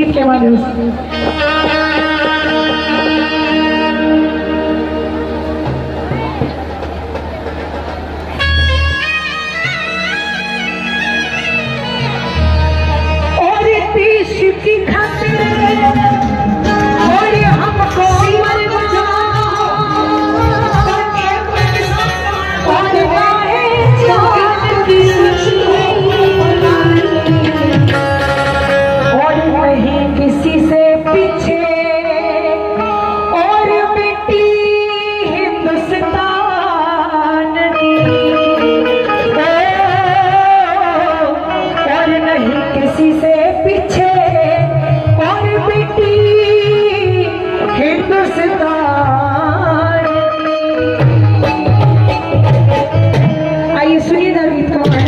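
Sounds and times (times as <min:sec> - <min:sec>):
instrumental accompaniment: 0:00.0 - 0:55.0
keyboard sustained chords: 0:00.0 - 0:55.0
ornamented melody line: 0:00.0 - 0:55.0
woman singing over a pa: 0:17.0 - 0:27.8.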